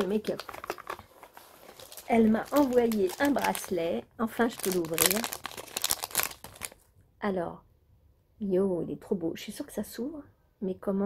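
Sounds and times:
plastic pouch crinkling: 0.0 - 6.9.

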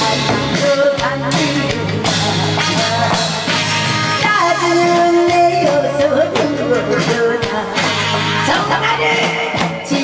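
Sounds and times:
loud backing music: 0.0 - 10.0
woman singing into a microphone: 0.0 - 10.0.

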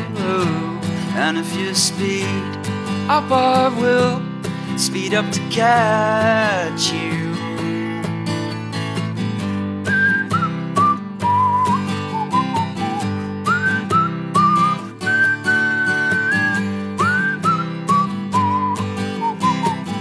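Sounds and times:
strummed acoustic guitar: 0.0 - 20.0
whistled melody: 9.8 - 20.0.

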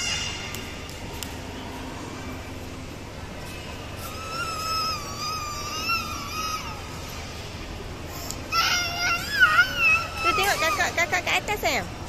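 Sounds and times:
child squealing: 4.1 - 7.0, 8.5 - 10.9.

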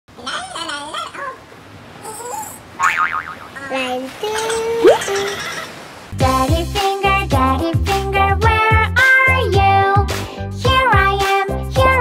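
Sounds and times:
squeaky cartoon voice chattering: 0.2 - 1.4, 4.3 - 5.7.

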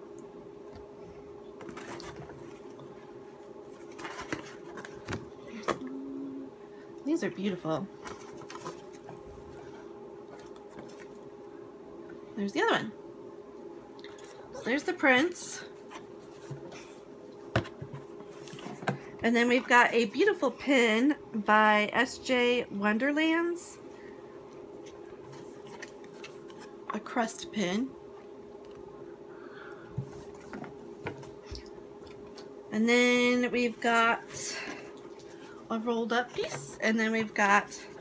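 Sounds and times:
low hum: 0.0 - 38.0
paper and card rustling: 3.7 - 5.2, 8.0 - 9.2
paper prints rustling and scraping: 3.7 - 5.2, 8.0 - 11.2, 17.9 - 19.0, 24.8 - 26.8.

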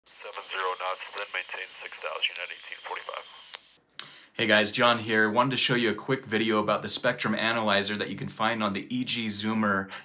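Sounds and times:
tinny radio voice: 0.2 - 3.5.

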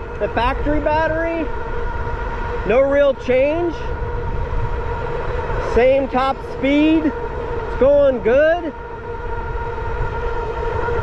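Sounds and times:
electric motor whining: 0.0 - 11.0
wind rumble on microphone: 0.0 - 11.0.

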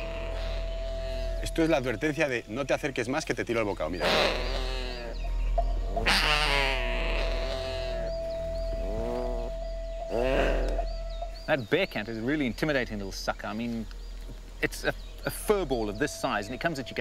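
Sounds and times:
bearcat growling: 8.8 - 10.9.

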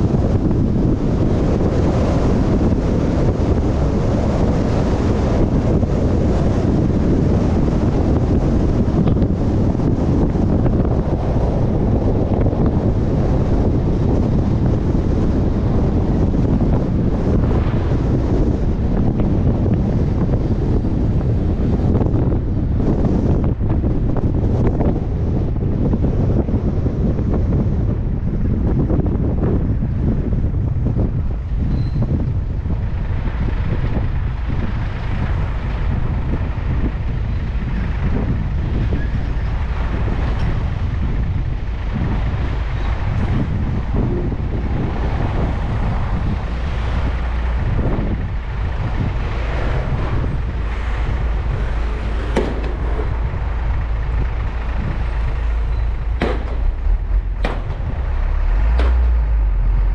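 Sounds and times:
truck running and road noise: 0.0 - 59.9
wind rumble on microphone: 0.0 - 59.9.

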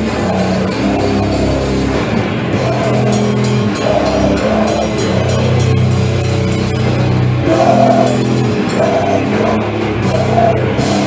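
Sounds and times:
bass guitar low notes: 0.0 - 11.0
distorted guitar: 0.0 - 11.0
drums and crashing cymbals: 0.0 - 11.0.

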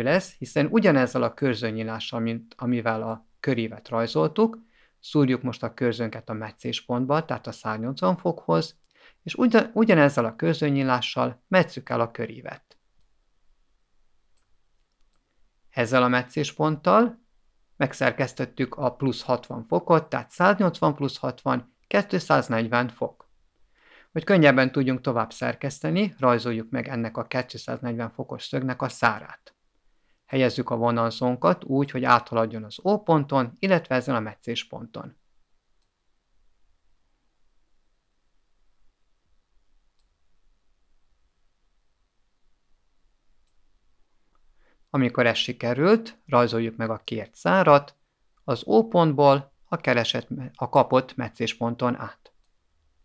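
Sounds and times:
faint click: 14.3 - 15.4, 35.8 - 36.0.

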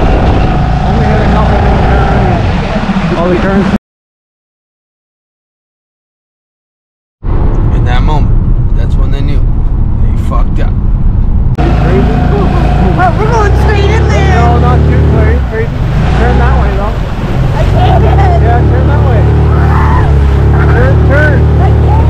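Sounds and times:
outboard motor running: 0.0 - 3.8, 11.6 - 22.0
people shouting: 19.4 - 20.8.

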